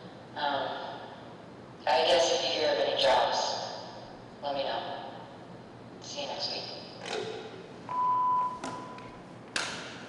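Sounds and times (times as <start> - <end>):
high electronic phone beep: 7.9 - 9.0.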